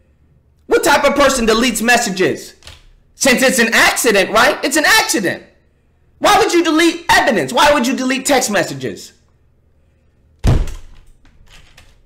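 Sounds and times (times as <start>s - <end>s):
heavy thump: 10.4s - 10.8s.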